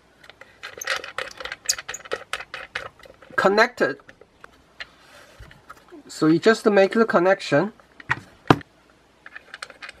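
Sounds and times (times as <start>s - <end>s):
small metallic clicks and scrapes: 0.2s - 5.9s, 9.2s - 10.0s.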